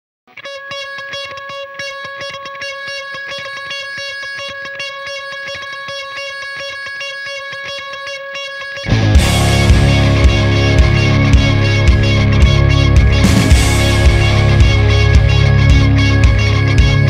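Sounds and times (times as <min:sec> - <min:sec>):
guitar picking over held note: 0:00.3 - 0:17.0.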